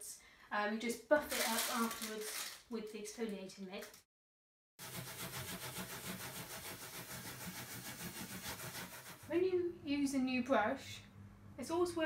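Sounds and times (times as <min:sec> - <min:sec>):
mitt rubbing on painted wood: 0:04.8 - 0:09.4.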